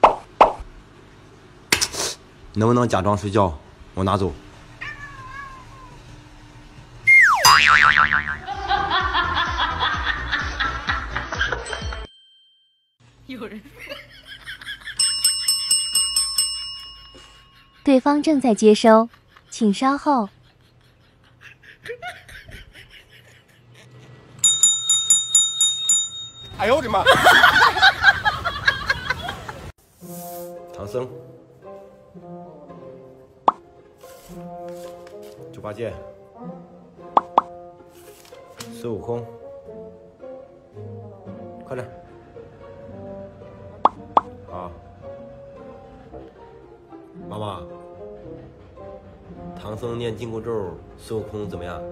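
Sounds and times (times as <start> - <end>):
cartoon bloop pops: 0.0 - 0.6, 7.1 - 8.5, 37.1 - 37.6, 43.8 - 44.3
desk call bell ringing: 15.0 - 17.8, 24.4 - 27.0
light background music: 29.8 - 51.9.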